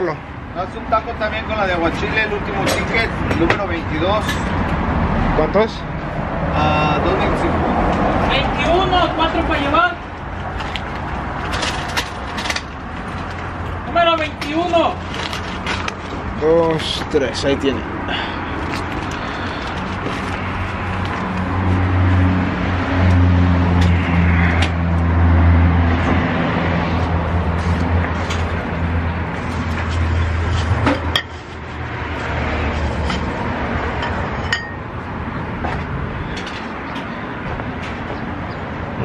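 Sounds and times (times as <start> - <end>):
street traffic: 0.0 - 39.0
vehicle engine hum: 0.0 - 39.0.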